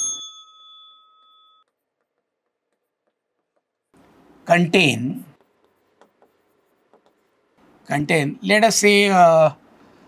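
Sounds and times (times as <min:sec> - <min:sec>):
bell-like ringing tone: 0:00.0 - 0:01.7
pen tapping on a board: 0:01.9 - 0:03.9, 0:05.4 - 0:07.2.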